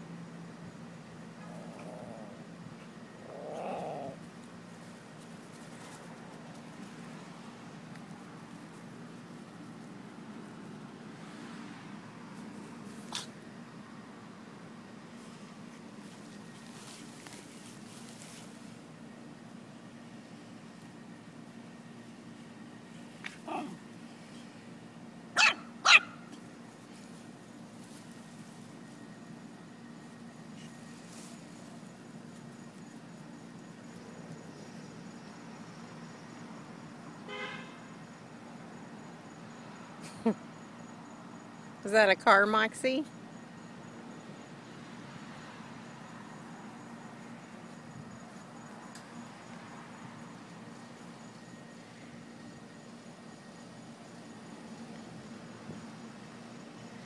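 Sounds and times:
small dog growling: 0:01.4 - 0:04.3, 0:23.3 - 0:23.8
small dog yelping: 0:23.2 - 0:23.8, 0:25.4 - 0:26.4
small dog barking: 0:23.3 - 0:23.8, 0:25.4 - 0:26.4.

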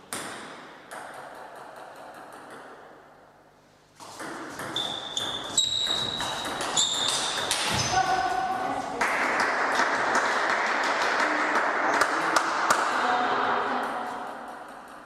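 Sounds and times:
ping pong ball clicks: 0:00.1 - 0:02.8, 0:14.2 - 0:15.0
ball bouncing: 0:00.1 - 0:02.9, 0:04.0 - 0:08.2, 0:13.8 - 0:15.0
shoe squeaks: 0:04.6 - 0:08.1.

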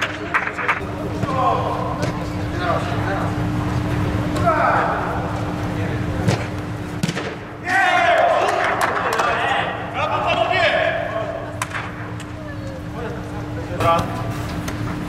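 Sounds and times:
steady low hum: 0:00.0 - 0:15.0
players shouting and cheering: 0:04.1 - 0:06.1, 0:07.4 - 0:12.9
football being struck: 0:06.2 - 0:07.6.

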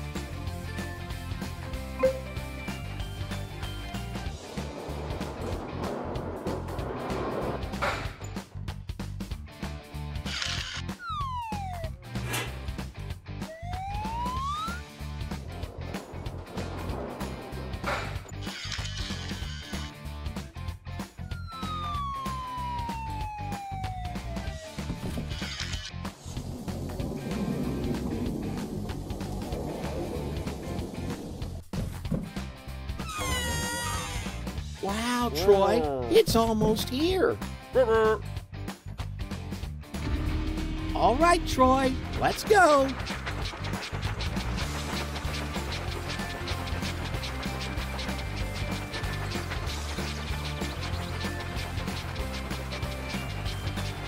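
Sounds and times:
cartoon background music: 0:00.0 - 0:31.3, 0:32.0 - 0:54.0
sliding-pitch sound effects: 0:11.0 - 0:12.5, 0:13.5 - 0:19.5, 0:21.3 - 0:24.8, 0:40.0 - 0:53.4.

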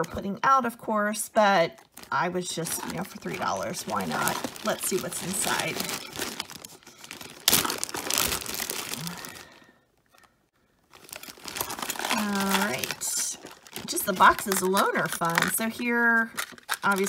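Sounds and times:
plastic bag crinkling: 0:01.7 - 0:17.0.

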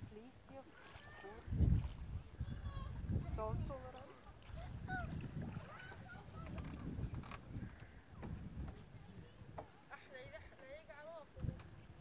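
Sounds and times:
faint distant voices: 0:00.0 - 0:12.0
wind buffeting microphone: 0:00.0 - 0:12.0.

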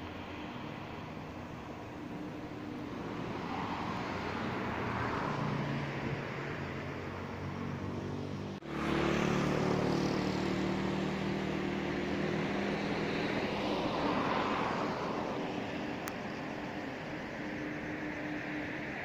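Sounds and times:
outdoor noise: 0:00.0 - 0:19.0.

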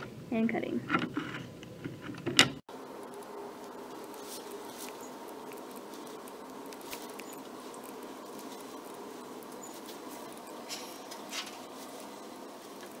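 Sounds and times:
steady low hiss: 0:02.7 - 0:13.0.

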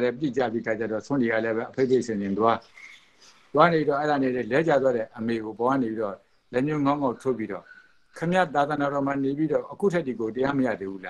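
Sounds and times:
man speaking: 0:00.0 - 0:02.7, 0:03.5 - 0:11.0.

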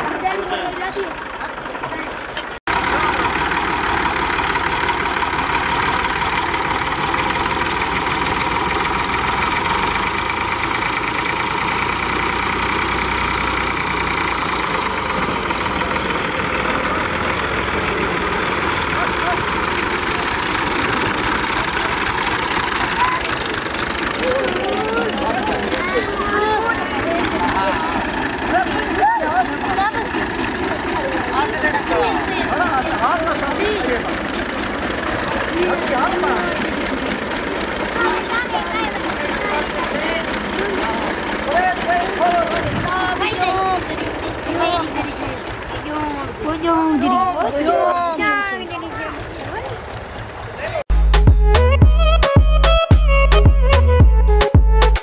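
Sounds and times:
people calling: 0:00.0 - 0:50.8
tractor engines running under load: 0:00.0 - 0:50.9.

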